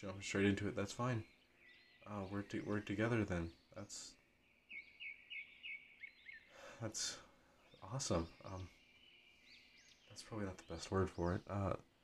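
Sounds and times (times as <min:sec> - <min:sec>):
small bird chirping: 0:00.0 - 0:12.0.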